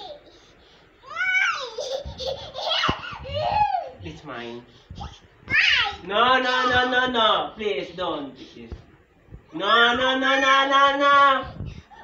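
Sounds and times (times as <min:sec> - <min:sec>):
little girl laughing: 0:01.2 - 0:04.0.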